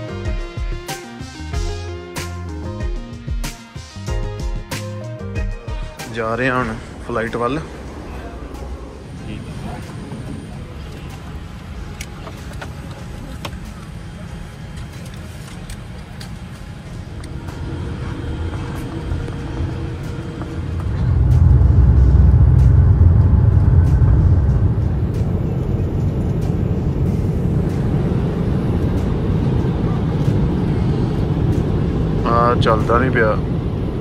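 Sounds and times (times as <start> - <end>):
jet engines low rumble: 0.0 - 34.0.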